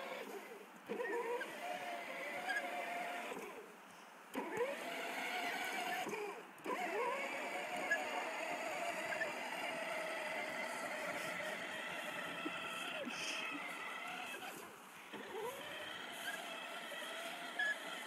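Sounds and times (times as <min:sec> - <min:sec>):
electric motor whining: 0:00.0 - 0:03.6, 0:04.3 - 0:18.0.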